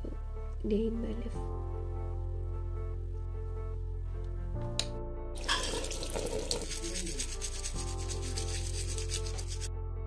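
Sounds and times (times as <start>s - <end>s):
toothbrush scrubbing: 5.4s - 9.7s.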